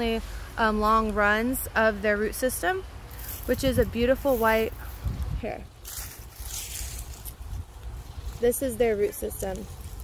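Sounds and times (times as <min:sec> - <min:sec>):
rustling leafy plants: 0:02.9 - 0:10.0
wind buffeting microphone: 0:03.4 - 0:10.0.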